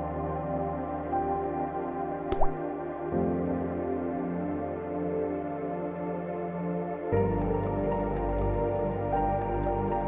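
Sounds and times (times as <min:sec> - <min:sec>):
soft ambient background music: 0:00.0 - 0:10.0
water-drop sound effect: 0:02.3 - 0:02.6.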